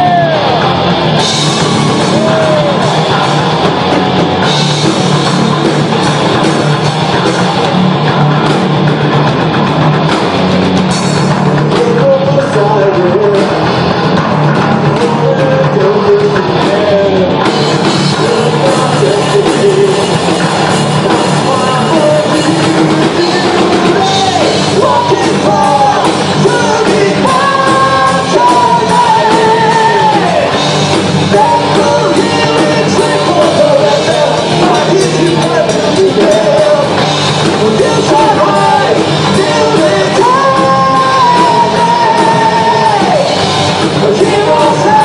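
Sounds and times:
drum kit: 0.0s - 45.0s
electric guitar: 0.0s - 45.0s
person singing long notes: 23.1s - 30.6s, 37.6s - 43.4s.

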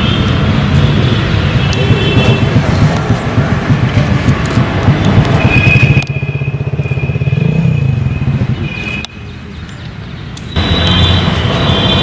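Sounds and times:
vehicle engine rumbling: 0.2s - 12.0s.

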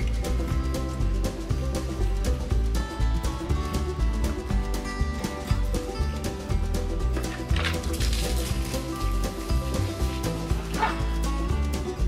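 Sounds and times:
background music with beat: 0.0s - 12.0s
dog barking: 10.6s - 11.2s.

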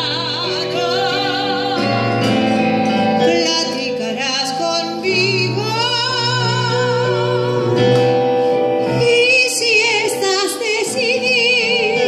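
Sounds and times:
woman singing with vibrato: 0.0s - 8.2s, 8.8s - 12.0s
keyboard piano chords: 0.0s - 12.0s.

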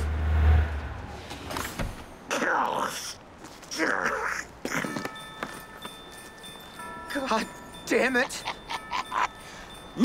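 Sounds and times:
car engine rumble: 0.0s - 2.2s.

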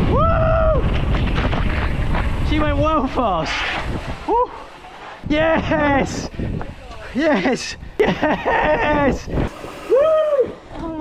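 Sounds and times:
wind buffeting microphone: 0.0s - 11.0s
falling shouts: 9.8s - 10.7s.

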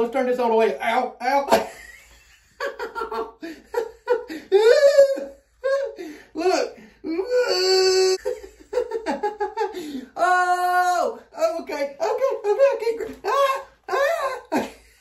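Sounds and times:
man laughing: 1.4s - 6.8s, 7.5s - 10.0s, 13.3s - 15.0s
man crying out in pain: 4.4s - 8.3s.

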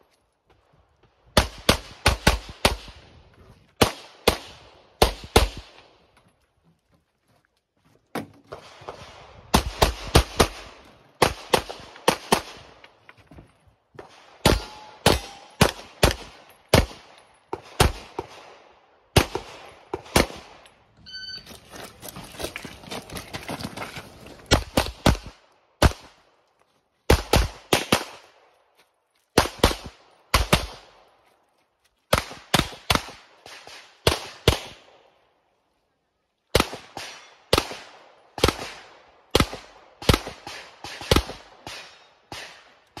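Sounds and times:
pistol shots: 14.0s - 20.6s.

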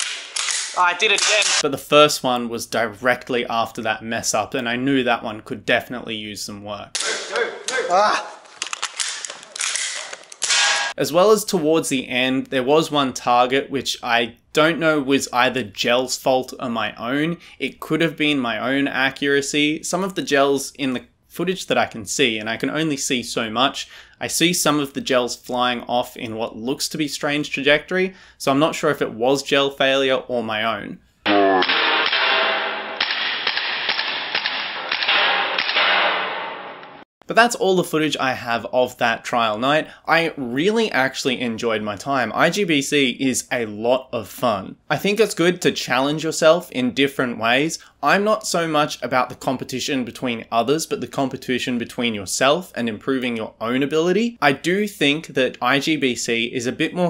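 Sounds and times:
gel blaster pistol snaps: 0.0s - 1.6s
voices: 0.8s - 1.8s, 7.0s - 8.4s, 31.3s - 31.7s
gel blaster pistol shots: 31.3s - 36.1s.

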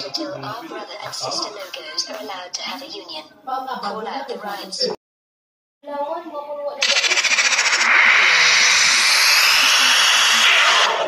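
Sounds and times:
fast rattling shimmer: 6.8s - 11.0s
logo sound effect from tv: 6.8s - 11.0s
loud hissing rush rising in pitch: 6.8s - 11.0s.

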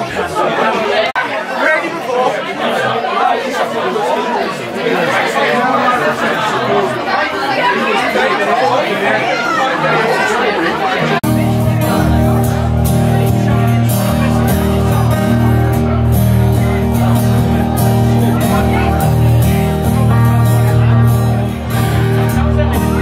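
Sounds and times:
crowd chatting in a pub: 0.0s - 23.0s
acoustic guitars strumming: 11.2s - 23.0s.

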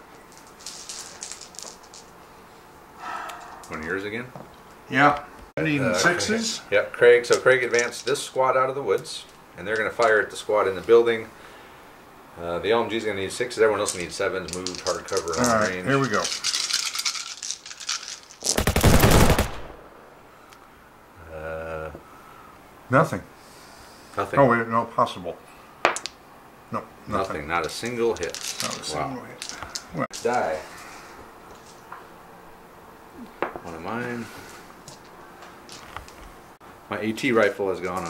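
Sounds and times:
plastic dice rattling: 0.6s - 2.1s, 13.9s - 18.6s, 27.6s - 29.8s.

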